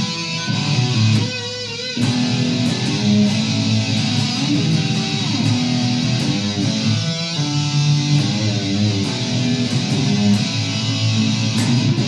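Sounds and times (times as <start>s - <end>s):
electric guitar lead line: 0.0s - 12.0s.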